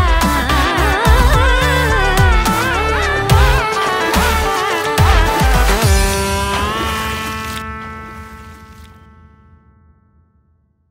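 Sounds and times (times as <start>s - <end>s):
deep bass beats: 0.0s - 8.8s.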